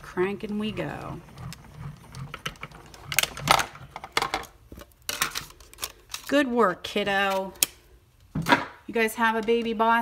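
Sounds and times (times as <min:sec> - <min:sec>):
hand-cranked machine rumbling: 0:00.0 - 0:03.8
plates clicking and clacking: 0:02.3 - 0:04.5.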